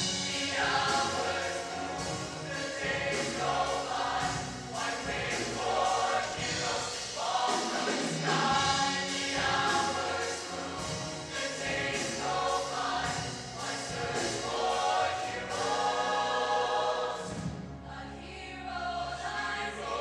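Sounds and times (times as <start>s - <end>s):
choir singing in harmony: 0.0s - 20.0s.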